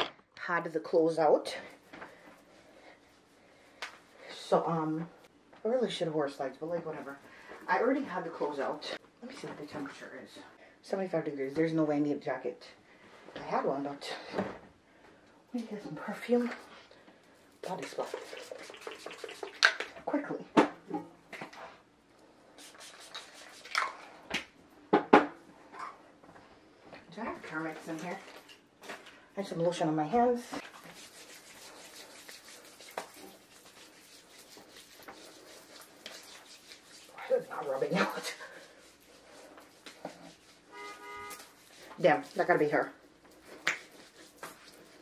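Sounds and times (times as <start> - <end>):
rustling of handled things: 25.4 - 29.7.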